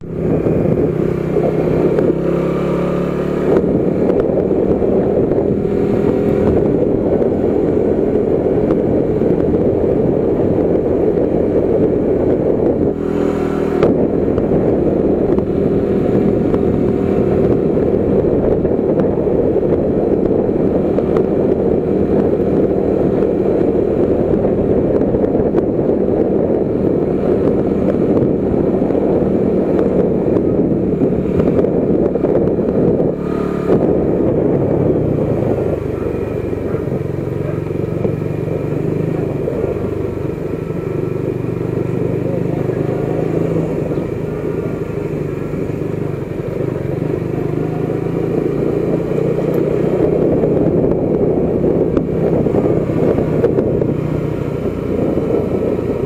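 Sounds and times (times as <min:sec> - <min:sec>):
motorcycle engine running: 0:00.0 - 0:56.0
wind noise: 0:00.0 - 0:56.0.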